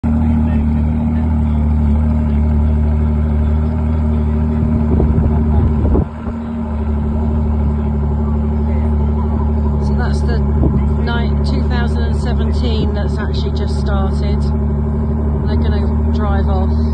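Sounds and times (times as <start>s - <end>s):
sports car engine idling: 0.0s - 16.9s.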